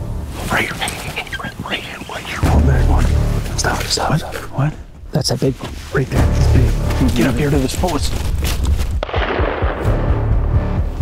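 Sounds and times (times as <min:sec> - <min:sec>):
music with low beat: 0:00.0 - 0:05.1, 0:06.0 - 0:11.0
rifle shot echoing: 0:09.0 - 0:10.1.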